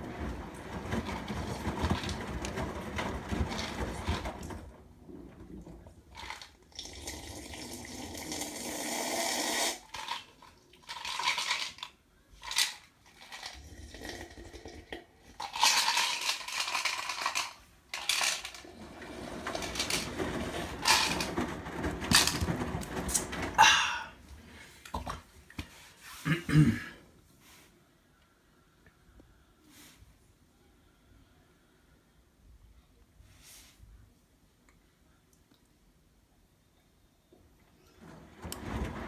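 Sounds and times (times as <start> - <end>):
washing machine clicks and knocks: 0.0 - 5.8, 18.8 - 24.0, 38.0 - 39.0
washing machine sloshing: 0.0 - 8.4, 18.2 - 25.9, 37.6 - 39.0.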